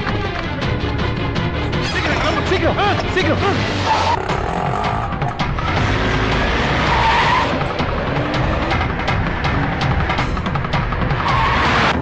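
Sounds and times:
dramatic film score: 0:00.0 - 0:12.0
tyres skidding: 0:00.0 - 0:12.0
car engine: 0:02.0 - 0:12.0.

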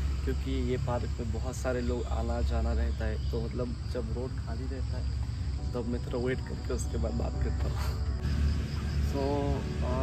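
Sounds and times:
high-pitched insect drone: 0:00.0 - 0:10.0
man talking: 0:00.2 - 0:08.0, 0:09.0 - 0:10.0.

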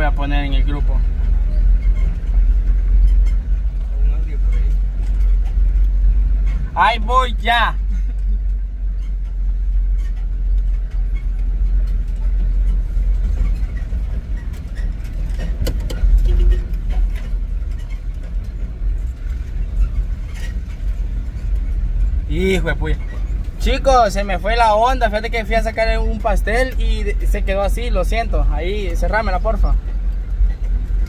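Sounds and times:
engine and road rumble: 0:00.0 - 0:31.0
knocks and rattles: 0:01.1 - 0:06.8, 0:07.8 - 0:24.1.

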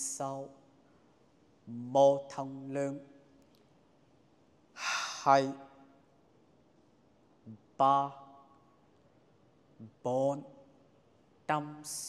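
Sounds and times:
man's sharp in-breath: 0:04.8 - 0:05.3.

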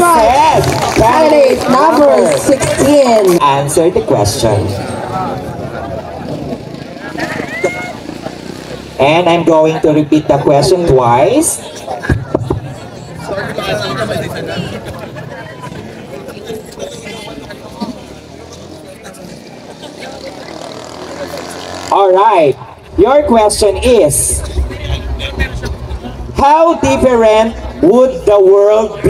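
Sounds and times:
faint voices: 0:00.0 - 0:09.0, 0:11.6 - 0:29.0
low outdoor rumble: 0:00.0 - 0:29.0
steady low hum: 0:22.5 - 0:28.5.

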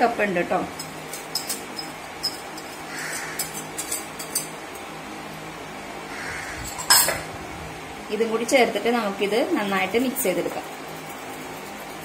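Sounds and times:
wire whisk scraping ceramic: 0:00.8 - 0:04.6.

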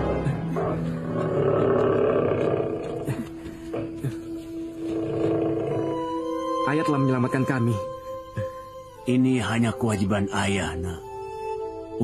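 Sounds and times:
tiger roar: 0:00.2 - 0:03.9, 0:04.8 - 0:06.0.

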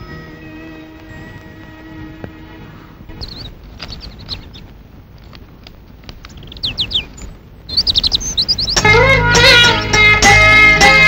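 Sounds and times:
music: 0:00.0 - 0:03.0, 0:08.6 - 0:11.0
small birds chirping: 0:00.0 - 0:10.3.

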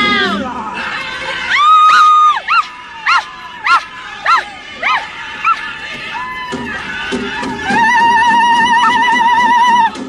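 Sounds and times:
high-pitched yelping calls: 0:01.5 - 0:05.7.

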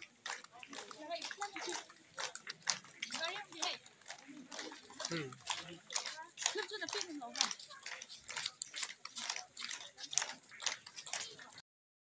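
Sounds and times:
crowd voices and calls: 0:00.0 - 0:11.6.

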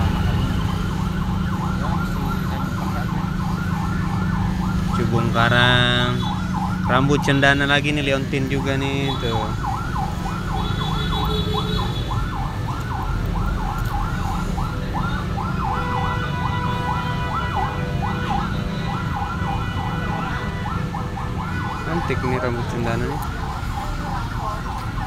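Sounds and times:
electronic siren-like wail: 0:00.0 - 0:25.0.

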